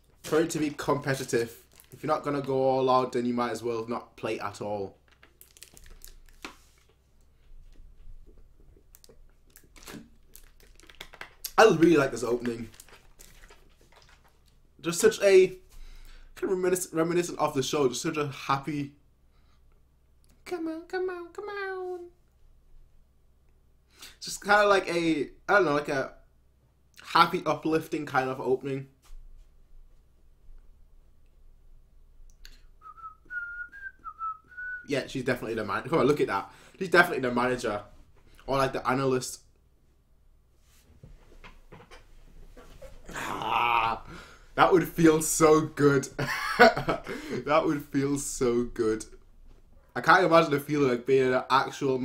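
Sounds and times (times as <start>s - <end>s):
plastic water bottle crinkling: 0.2s - 2.5s, 5.0s - 7.0s, 8.8s - 14.6s
speech: 0.2s - 5.0s, 11.5s - 12.8s, 14.8s - 15.6s, 16.4s - 19.0s, 20.4s - 22.2s, 24.2s - 26.2s, 27.0s - 29.0s, 34.9s - 39.5s, 43.1s - 46.2s, 47.4s - 49.2s, 50.0s - 52.0s
person whistling a tune: 32.8s - 34.9s.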